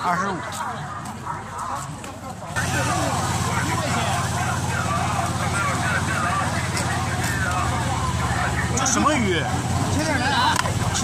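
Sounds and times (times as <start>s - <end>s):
market chatter: 0.0s - 11.0s.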